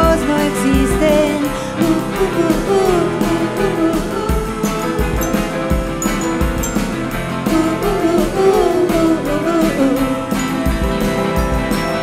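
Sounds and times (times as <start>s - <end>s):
drums and cymbal beat: 0.0s - 12.0s
guitar: 0.0s - 12.0s
gliding melody line: 5.0s - 8.1s.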